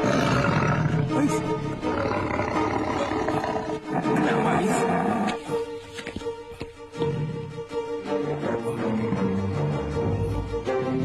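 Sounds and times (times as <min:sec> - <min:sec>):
tiger roaring: 0:00.0 - 0:05.4
dramatic background music: 0:00.0 - 0:11.0.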